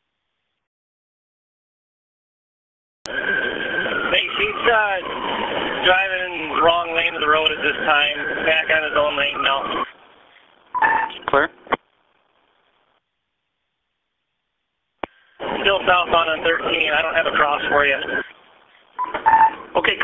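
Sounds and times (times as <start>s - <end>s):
radio hiss: 4.0s - 13.0s, 15.0s - 19.0s, 19.6s - 20.0s
garbled voice over police radio: 4.1s - 5.1s, 5.8s - 9.9s, 15.5s - 18.4s.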